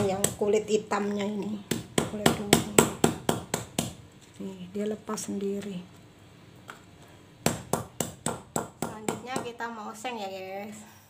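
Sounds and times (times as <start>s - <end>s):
stone pestle knocking in mortar: 1.7s - 4.0s, 7.4s - 9.6s.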